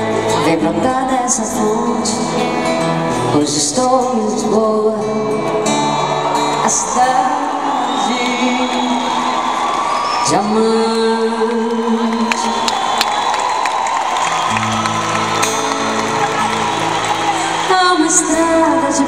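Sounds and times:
live concert music: 0:00.0 - 0:19.0
audience cheering and whooping: 0:05.7 - 0:19.0.

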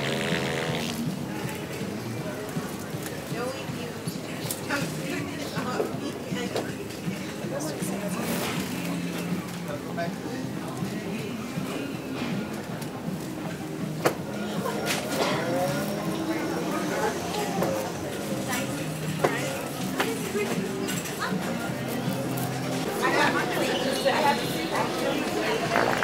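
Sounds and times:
background music: 0:00.0 - 0:26.0
women's voices: 0:16.3 - 0:21.8, 0:22.8 - 0:26.0.

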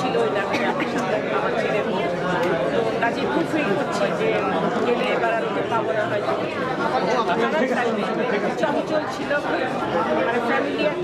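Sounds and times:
woman talking: 0:00.0 - 0:02.2, 0:03.0 - 0:06.6
crowd chatter: 0:00.0 - 0:11.0.

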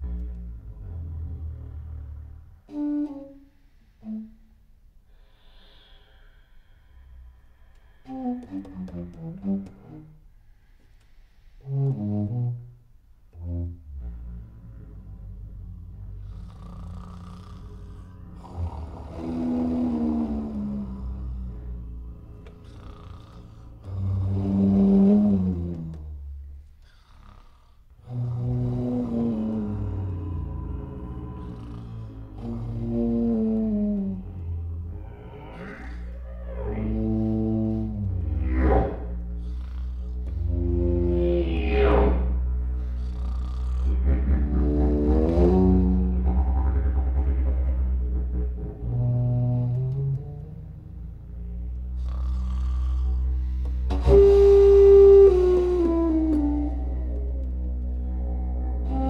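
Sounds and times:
low didgeridoo drone: 0:00.0 - 0:03.4, 0:11.6 - 0:26.8, 0:28.0 - 0:59.0
breathy flute notes: 0:00.0 - 0:27.0, 0:28.0 - 0:59.0
flute tones sliding downward: 0:28.1 - 0:43.1, 0:43.9 - 0:51.8, 0:53.8 - 0:59.0.

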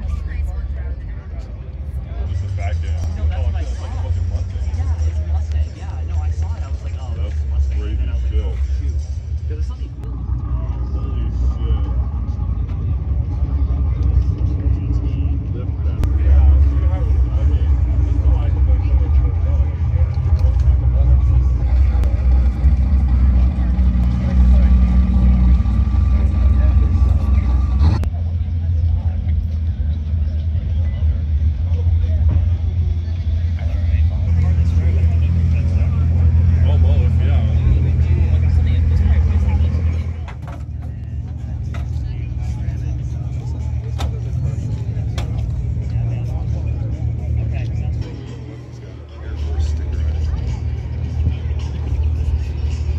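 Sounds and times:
car engine idling: 0:00.0 - 0:52.9
voices talking: 0:00.0 - 0:52.9.

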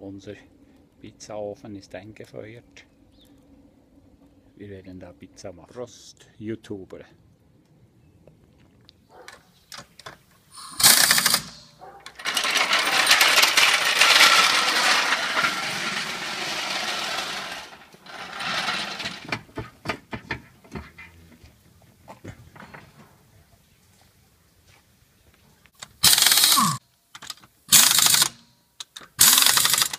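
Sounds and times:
sharp metallic clicks and clinks: 0:09.3 - 0:19.3, 0:25.8 - 0:29.9
rattling power tool: 0:10.6 - 0:20.0, 0:25.8 - 0:26.8, 0:27.7 - 0:28.4, 0:29.2 - 0:29.9.

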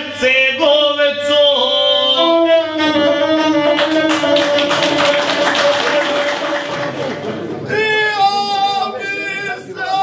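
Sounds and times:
men singing in close harmony: 0:00.0 - 0:03.8
people clapping: 0:03.7 - 0:07.7.

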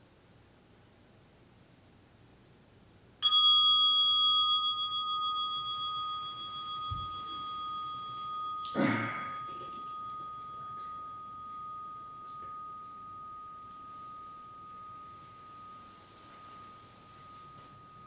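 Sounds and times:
meditation bell ringing: 0:03.2 - 0:18.0
person sighing: 0:08.7 - 0:09.5.

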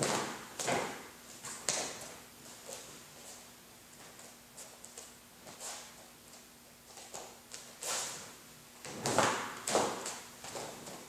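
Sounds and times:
bare feet on foam mats: 0:00.0 - 0:11.0.

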